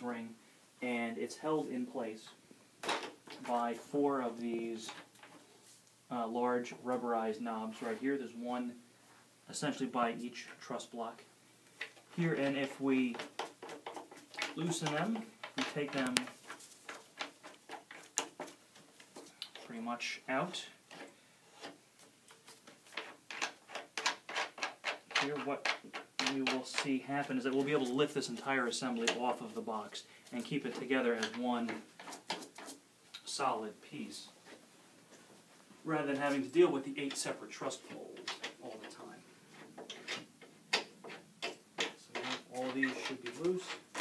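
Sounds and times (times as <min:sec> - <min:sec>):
sharp clicks and knocks: 0:11.8 - 0:19.8, 0:20.9 - 0:29.6, 0:30.3 - 0:33.3, 0:37.0 - 0:44.0.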